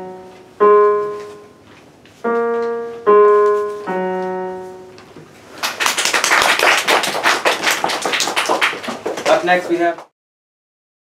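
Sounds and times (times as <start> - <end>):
people applauding: 5.6 - 10.1.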